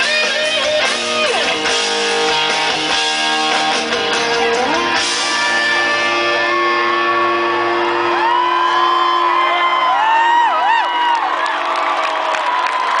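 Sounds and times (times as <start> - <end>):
crowd cheering: 0.0 - 13.0
high gliding whoops: 5.3 - 12.8.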